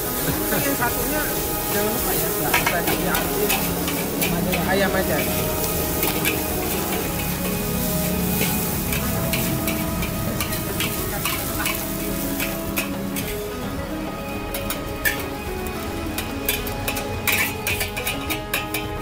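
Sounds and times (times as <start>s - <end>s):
food sizzling in a wok: 0.0s - 19.0s
metal spatula scraping a pan: 0.1s - 13.7s, 14.4s - 19.0s.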